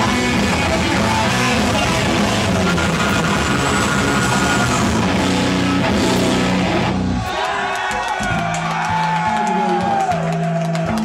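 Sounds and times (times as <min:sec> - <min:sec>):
heavy metal band playing live: 0:00.0 - 0:07.3.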